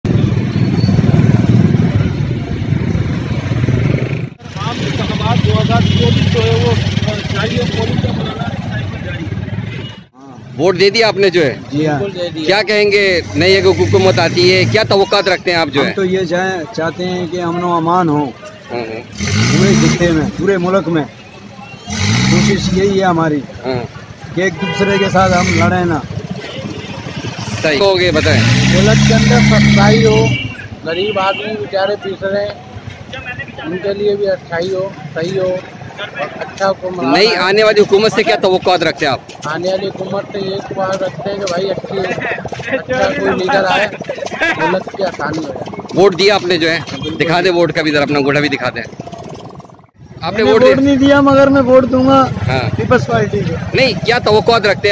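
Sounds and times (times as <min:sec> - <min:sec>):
street noise: 0:00.0 - 0:54.9
motorcycle engine rumbling: 0:00.1 - 0:17.6, 0:18.7 - 0:54.9
voices talking: 0:04.0 - 0:54.9.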